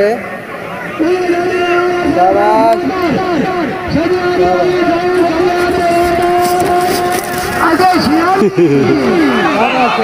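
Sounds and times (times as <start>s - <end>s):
voices shouting: 0.2s - 10.0s.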